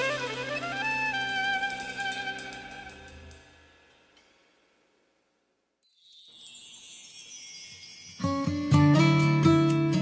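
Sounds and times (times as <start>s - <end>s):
shimmering high chimes: 5.8s - 9.4s.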